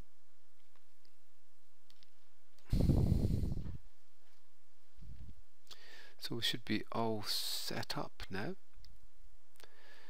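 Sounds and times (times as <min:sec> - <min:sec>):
breath blown across microphone: 0:02.7 - 0:03.8.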